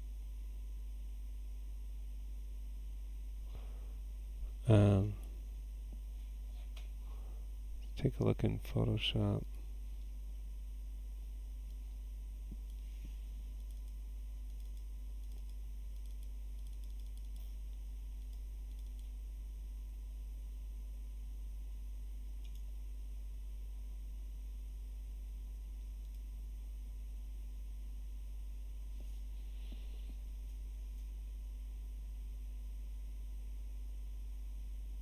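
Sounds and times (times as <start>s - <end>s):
electrical hum and hiss: 0.0s - 35.0s
computer mouse clicks: 11.6s - 19.2s, 22.4s - 22.7s, 25.8s - 26.3s.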